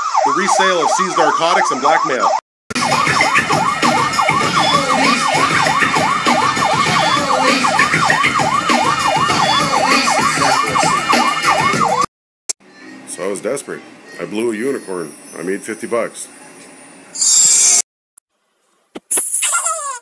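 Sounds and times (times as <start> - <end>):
police siren yelp: 0.0 - 12.1.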